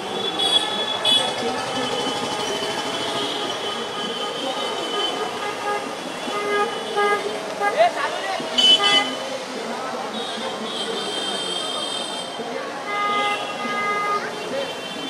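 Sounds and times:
vehicle horns honking: 0.0 - 9.2, 10.2 - 15.0
crowd voices: 0.0 - 15.0.

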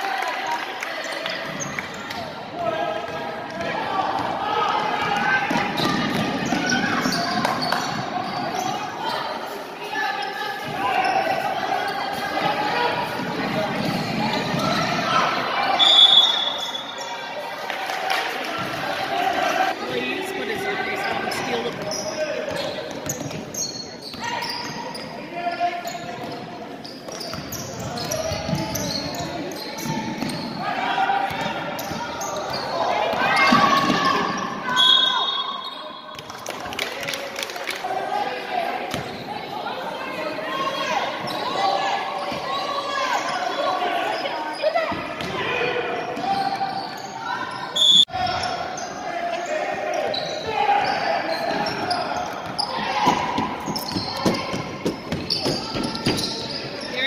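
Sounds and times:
echoing voices: 0.0 - 57.0.

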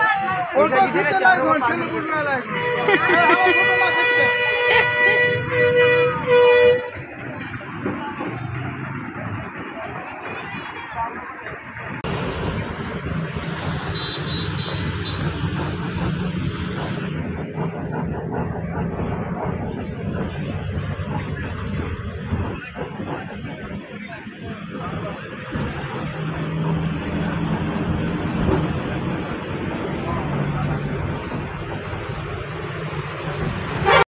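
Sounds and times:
bus engine rumbling: 0.0 - 34.0
road traffic noise: 0.0 - 34.0.

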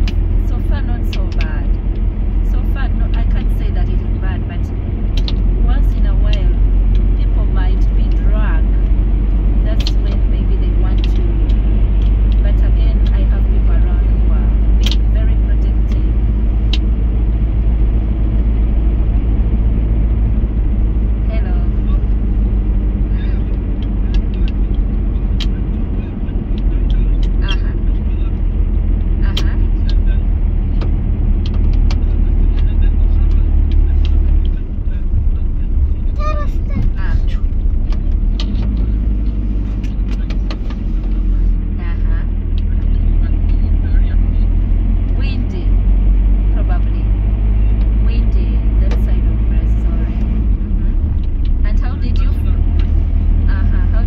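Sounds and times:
bus engine and road rumble: 0.0 - 54.0.

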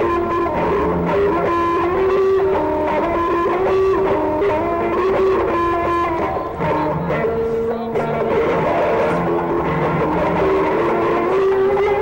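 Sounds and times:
electric guitar melody: 0.0 - 12.0
rock band backing: 0.0 - 12.0.

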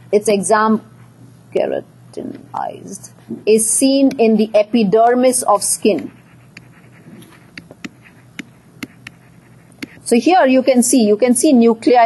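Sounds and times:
low background hum: 0.0 - 12.0
stylus ticking on tablet: 5.9 - 10.0.

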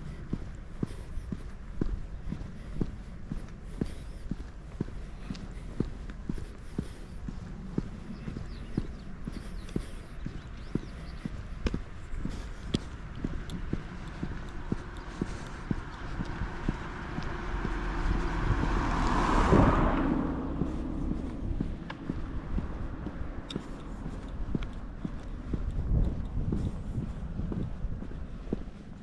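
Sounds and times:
footsteps on asphalt: 0.0 - 29.0
car passing by: 12.9 - 29.0.

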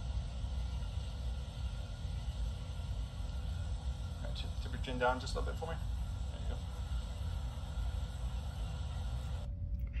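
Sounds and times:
even hiss: 0.0 - 9.5
low hum: 0.0 - 10.0.

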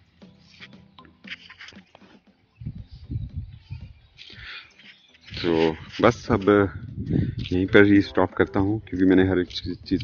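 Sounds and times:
wind buffeting microphone: 2.6 - 4.2, 5.3 - 7.9.

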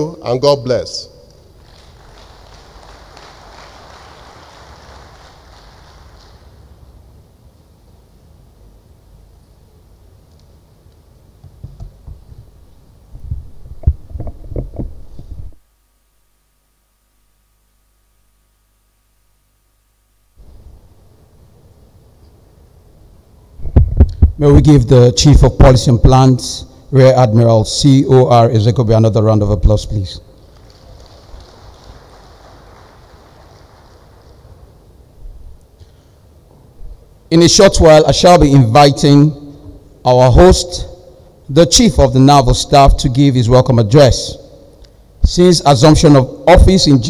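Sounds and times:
low room hum: 0.0 - 47.0
audience applauding faintly: 1.5 - 7.0, 30.4 - 35.0.

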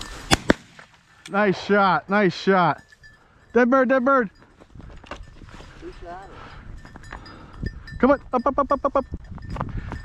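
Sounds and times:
footsteps in dry grass: 4.4 - 6.2.

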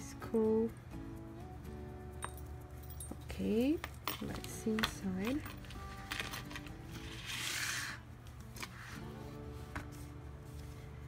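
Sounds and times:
soft background music: 0.0 - 11.0
paper and card rustling: 4.1 - 11.0.

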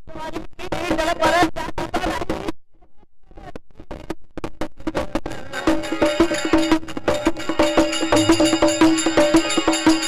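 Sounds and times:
hand drum strokes: 5.0 - 10.0
harmonium note: 5.7 - 10.0.

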